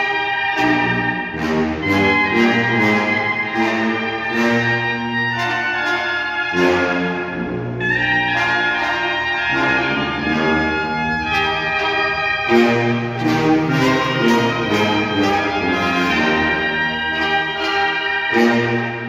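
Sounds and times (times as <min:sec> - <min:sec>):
trumpets and trombones chords: 0:00.0 - 0:19.0.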